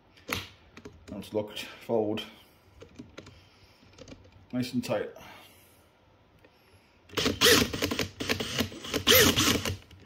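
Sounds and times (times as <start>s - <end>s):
cordless drill whirring: 7.1s - 9.8s.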